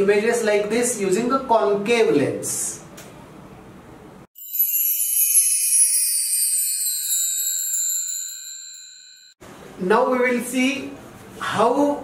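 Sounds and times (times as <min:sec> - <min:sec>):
high-pitched transition chime: 0:04.4 - 0:09.4.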